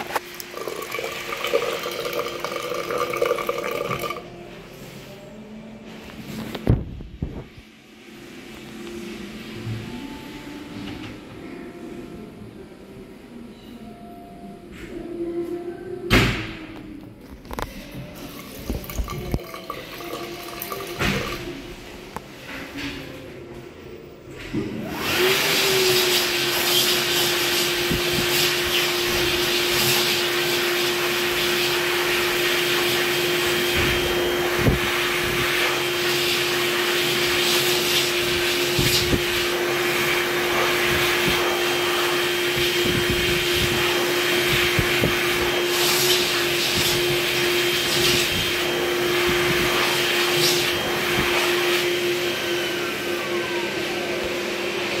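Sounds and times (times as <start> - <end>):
hand dryer running: 0.0 - 11.5, 16.9 - 23.2, 24.5 - 55.0.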